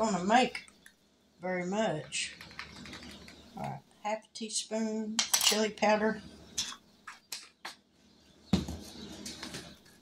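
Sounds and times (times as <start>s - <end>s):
jars scraping and rustling: 2.1s - 3.8s.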